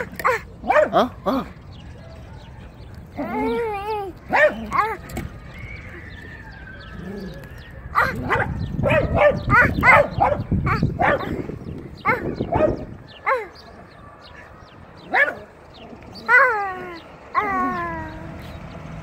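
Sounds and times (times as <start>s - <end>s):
dog barking: 0.0s - 1.1s, 4.3s - 5.0s, 7.9s - 11.4s, 12.0s - 13.6s, 15.1s - 15.5s
dog yelping: 0.0s - 1.5s, 3.2s - 18.4s.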